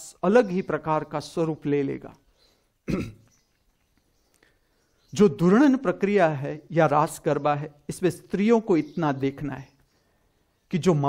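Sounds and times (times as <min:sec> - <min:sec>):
man speaking: 0:00.0 - 0:02.2, 0:05.1 - 0:09.7, 0:10.7 - 0:11.0
man clearing throat: 0:02.8 - 0:03.3.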